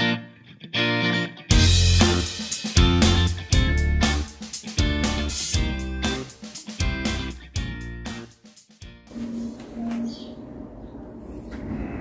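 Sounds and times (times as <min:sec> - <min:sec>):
air conditioner whirring: 0:09.1 - 0:12.0.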